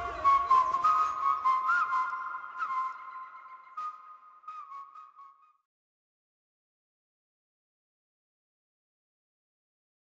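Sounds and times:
whistled melody: 0.0 - 5.7.

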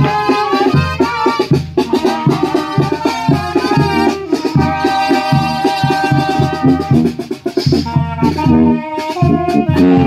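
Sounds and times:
brass band music: 0.0 - 10.0
drum beats: 0.0 - 10.0.

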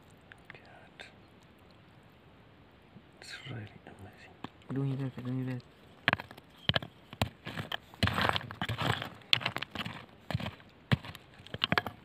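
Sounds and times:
person whispering: 0.4 - 1.2, 3.2 - 5.6
stone handled over gravel: 4.4 - 12.0.

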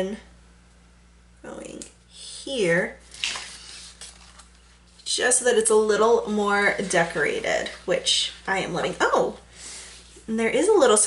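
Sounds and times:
paper rustling: 3.0 - 5.1
soft paper handling sounds: 3.0 - 5.4.

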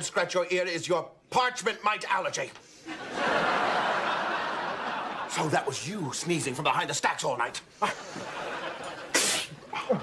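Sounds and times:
man sneezing: 9.1 - 10.0.

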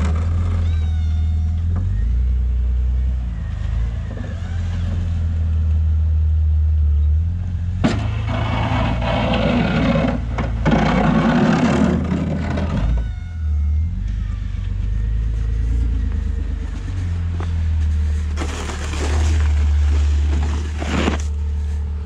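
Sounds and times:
car engine running under load: 1.5 - 22.0
plow blade scraping pavement: 7.7 - 13.1, 13.9 - 22.0.

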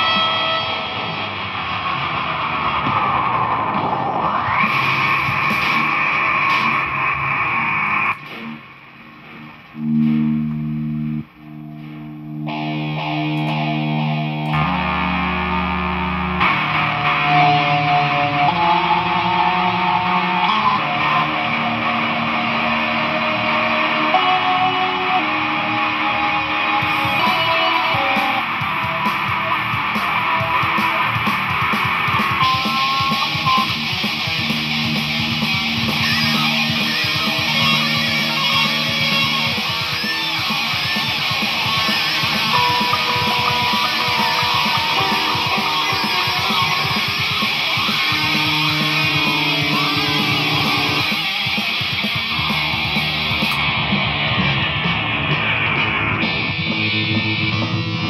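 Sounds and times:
distorted electric guitar: 0.0 - 58.0.

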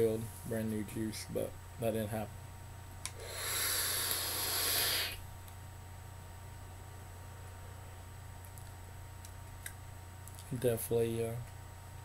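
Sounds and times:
air hissing through atomizer: 3.1 - 5.2
vape coil sizzling: 3.1 - 5.2.

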